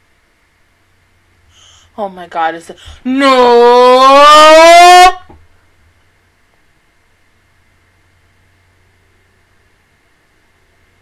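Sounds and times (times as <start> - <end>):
woman crying out in shock: 3.2 - 5.2.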